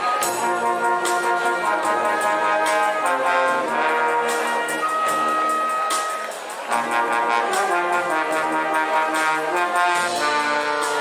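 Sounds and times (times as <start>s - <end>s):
brass band playing: 0.0s - 11.0s
drum kit keeping the beat: 0.0s - 11.0s.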